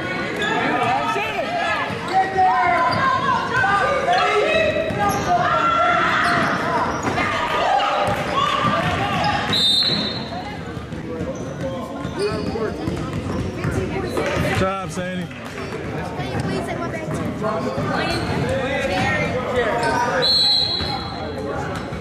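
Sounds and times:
shouts echoing in a hall: 0:00.0 - 0:10.8
referee's whistle: 0:09.4 - 0:10.3, 0:20.1 - 0:21.2.

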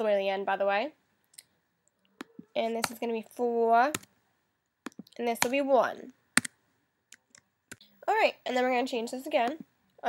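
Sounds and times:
keyboard and mouse clicks: 0:03.9 - 0:04.1, 0:04.8 - 0:05.6, 0:06.4 - 0:07.8.

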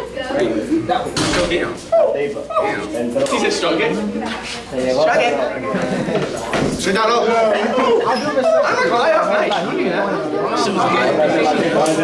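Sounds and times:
young men chattering: 0:00.0 - 0:12.0.

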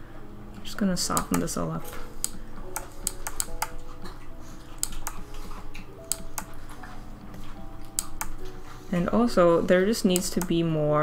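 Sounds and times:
soft piano music: 0:00.0 - 0:11.0
keyboard keys clicking: 0:01.0 - 0:03.8, 0:04.8 - 0:08.6, 0:09.9 - 0:10.7.

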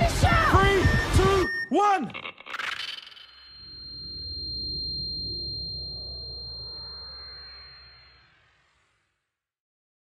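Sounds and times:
high-pitched ringing tone: 0:02.5 - 0:09.2.

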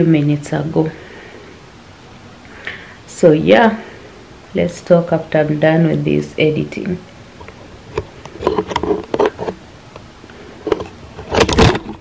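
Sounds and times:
phone handling rustle: 0:07.4 - 0:09.6, 0:10.6 - 0:12.0.

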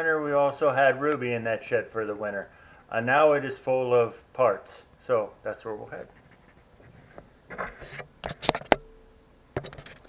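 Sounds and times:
faint hum: 0:00.0 - 0:10.0
sharp handling knocks and clicks: 0:06.1 - 0:08.9.

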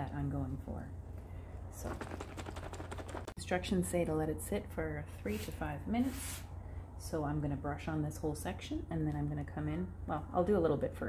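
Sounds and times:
woman speaking: 0:00.0 - 0:00.9, 0:01.7 - 0:02.0, 0:03.4 - 0:06.4, 0:07.0 - 0:11.0.

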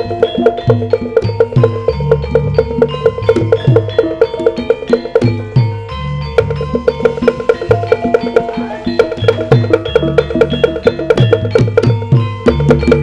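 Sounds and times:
sharp wooden knocks: 0:00.0 - 0:05.6, 0:06.3 - 0:13.0
metallophone notes: 0:00.0 - 0:13.0.

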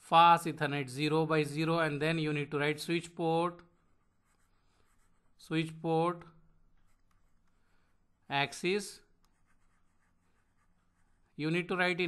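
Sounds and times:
stylus scratching on tablet: 0:03.0 - 0:05.8, 0:06.7 - 0:08.1, 0:09.0 - 0:11.8.

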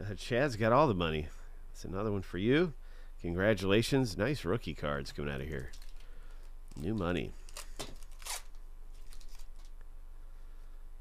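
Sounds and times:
foil wrapper crinkling: 0:05.5 - 0:09.8.

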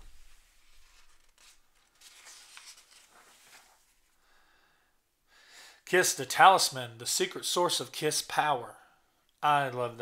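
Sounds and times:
magazine page turning: 0:00.0 - 0:04.2.

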